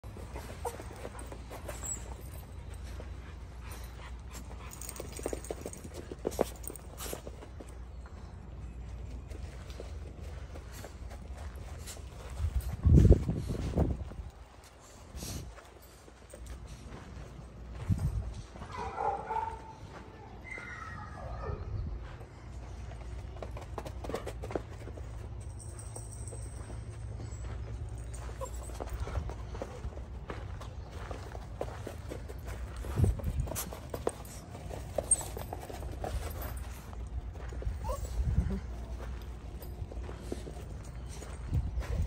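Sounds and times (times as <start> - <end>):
dogs whining and yipping: 0.2 - 5.9, 20.4 - 21.7, 28.0 - 29.2, 37.5 - 38.6
small dog whining yelp: 20.4 - 21.7, 37.8 - 38.2.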